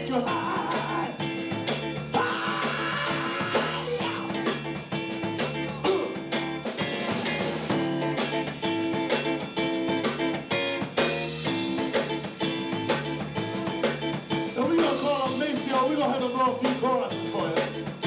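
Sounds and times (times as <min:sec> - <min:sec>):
drum kit beat: 0:00.0 - 0:18.0
electric bass: 0:00.0 - 0:18.0
electric guitar: 0:00.0 - 0:18.0.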